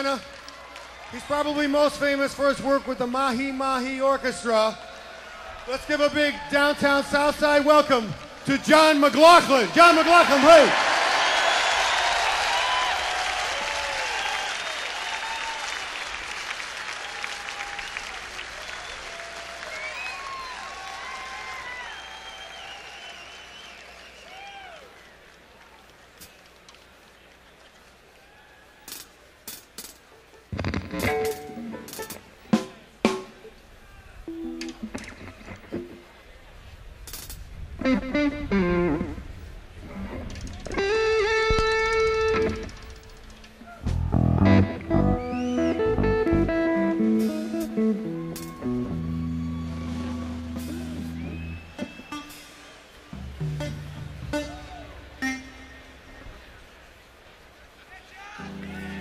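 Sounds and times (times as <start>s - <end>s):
crowd cheering and whooping: 10.2s - 16.2s, 16.9s - 25.3s, 48.0s - 53.4s
electric guitar notes and chords: 30.5s - 33.5s, 34.3s - 36.1s, 37.8s - 56.5s, 58.4s - 59.0s.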